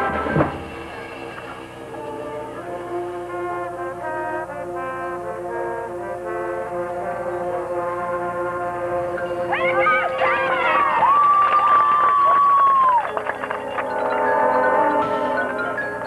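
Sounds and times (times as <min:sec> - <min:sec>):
marching band playing sustained chords: 0:00.0 - 0:16.0
crowd whistling and cheering: 0:09.5 - 0:16.0.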